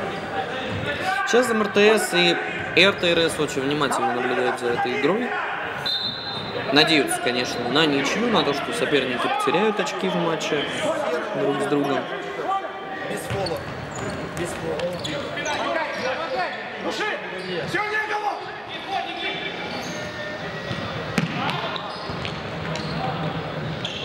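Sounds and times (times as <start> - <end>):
sneakers squeaking on wood floor: 13.2 - 16.8, 19.7 - 24.0.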